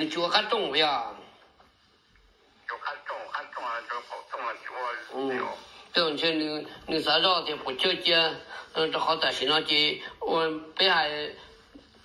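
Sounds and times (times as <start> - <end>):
person talking: 2.7 - 11.4.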